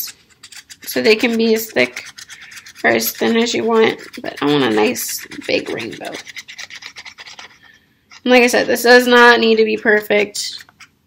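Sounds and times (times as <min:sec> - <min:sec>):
marker scratching on paper plate: 0:00.0 - 0:11.0.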